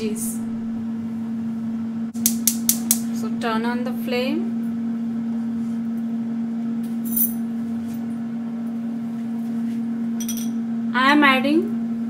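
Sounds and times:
steady hum: 0.0s - 12.0s
gas stove igniter clicking: 2.2s - 3.1s.

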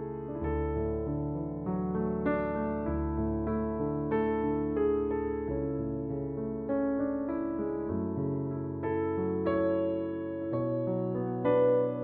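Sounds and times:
slow piano music: 0.0s - 12.0s.

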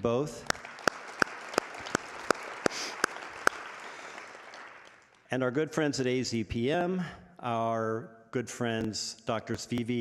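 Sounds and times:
loud close hand claps: 0.4s - 5.2s
audience applauding: 0.4s - 5.3s.

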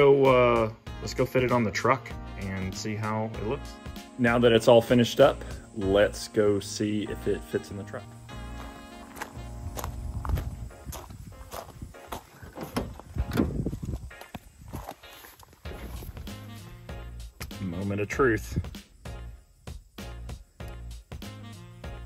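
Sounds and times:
background music: 0.0s - 22.0s
footsteps walking: 8.3s - 16.8s.

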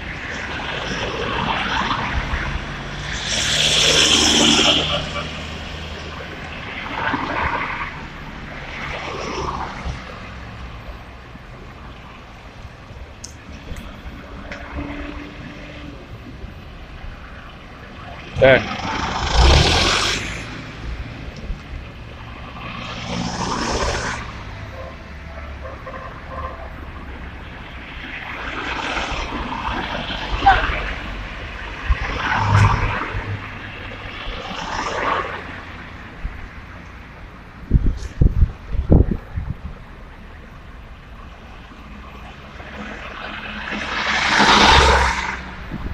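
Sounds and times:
loud rush of noise: 0.0s - 12.7s, 13.3s - 25.4s, 26.1s - 45.9s
car approaching: 0.0s - 25.6s, 26.5s - 45.9s
road traffic: 0.0s - 45.9s
wind buffeting microphone: 37.5s - 40.0s, 45.5s - 45.9s.

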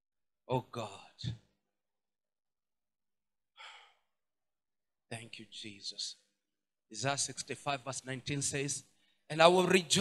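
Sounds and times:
breath into a microphone: 3.6s - 4.1s, 8.9s - 9.3s.

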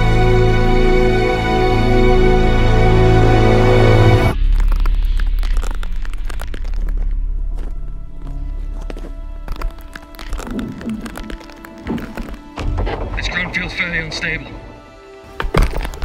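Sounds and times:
low rumble: 4.3s - 13.3s
dense crackling clicks: 4.4s - 14.8s
heavy thuds: 7.0s - 16.0s.

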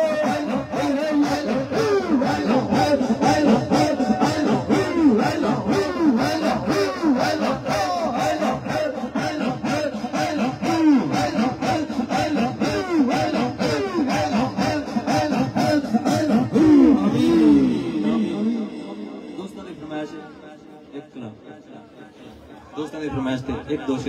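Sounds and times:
rhythmic breathing: 0.0s - 20.9s
men chanting in unison: 0.0s - 24.0s.

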